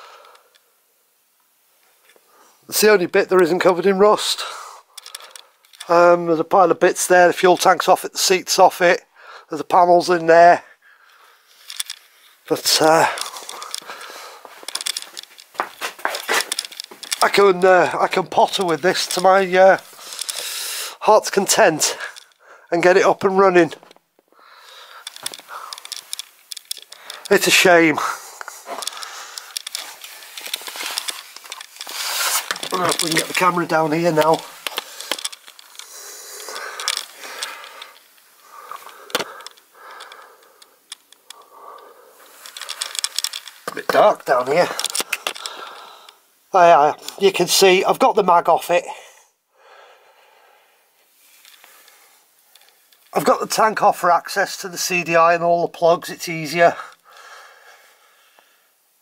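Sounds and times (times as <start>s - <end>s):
light clicks and scrapes: 11.1s - 23.0s, 24.6s - 46.2s, 51.2s - 53.6s.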